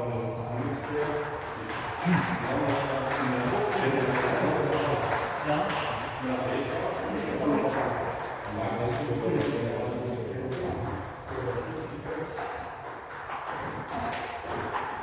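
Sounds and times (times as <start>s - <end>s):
table tennis balls clicking: 0.4s - 15.0s.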